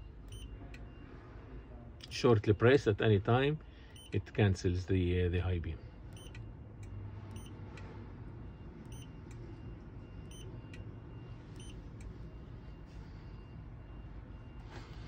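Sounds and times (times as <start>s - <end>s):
steady low cabin hum: 0.0s - 15.0s.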